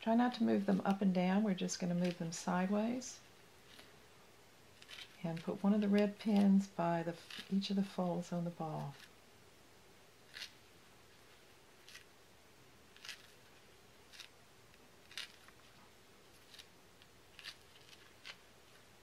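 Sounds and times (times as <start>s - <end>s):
pins scratching into thread: 4.8s - 6.6s, 10.3s - 10.6s, 15.0s - 15.5s, 17.3s - 18.4s.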